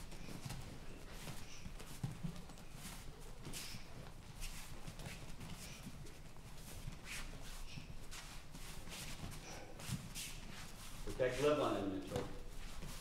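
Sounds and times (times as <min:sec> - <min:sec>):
bare feet shuffling on mats: 0:00.0 - 0:13.0
person speaking: 0:11.1 - 0:12.4.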